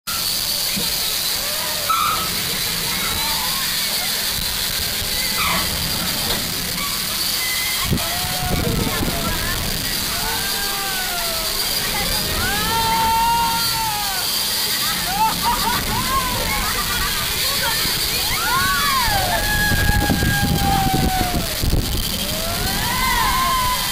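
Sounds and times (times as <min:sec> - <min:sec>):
riders crying out: 0:00.1 - 0:23.9
roller coaster rushing on track: 0:00.1 - 0:23.9.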